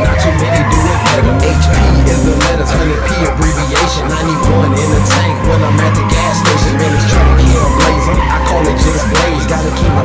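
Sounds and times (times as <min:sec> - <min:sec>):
hip-hop beat with heavy bass: 0:00.0 - 0:10.0.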